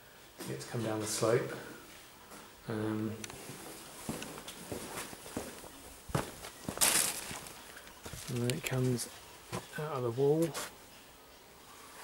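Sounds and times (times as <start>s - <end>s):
boot footsteps on concrete: 4.0s - 9.7s.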